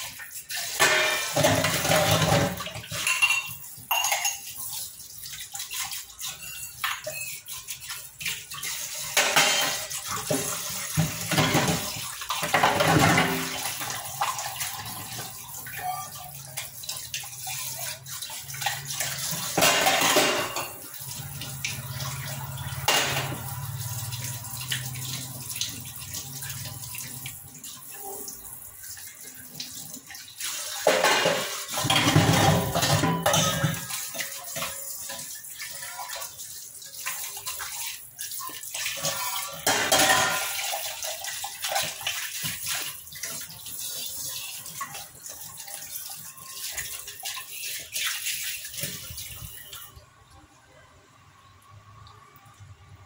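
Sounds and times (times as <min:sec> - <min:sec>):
water splashing off dishes: 0:00.0 - 0:50.1.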